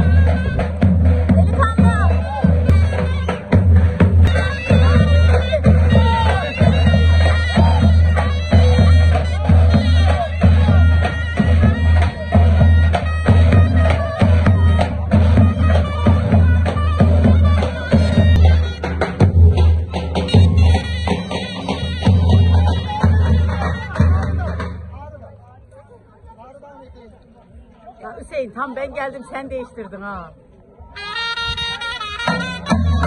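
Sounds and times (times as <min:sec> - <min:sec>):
bass drum beating a rhythm: 0:00.0 - 0:25.1
shawm playing melody: 0:00.0 - 0:26.9, 0:30.8 - 0:33.0
murmur of voices: 0:00.0 - 0:33.0.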